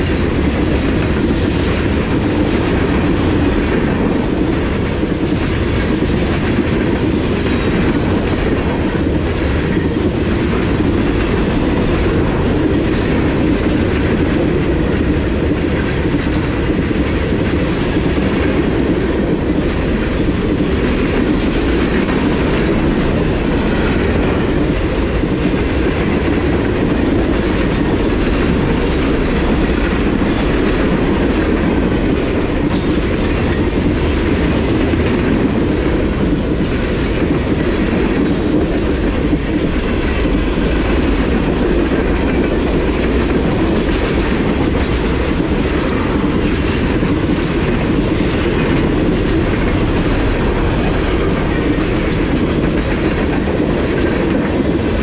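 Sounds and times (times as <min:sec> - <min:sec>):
train wheels rumbling on rail: 0:00.0 - 0:55.0
wheels clacking over rail joints: 0:00.0 - 0:55.0.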